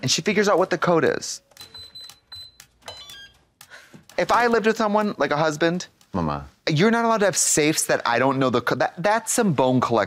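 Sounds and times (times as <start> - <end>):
keypad beeping: 1.4 - 4.6.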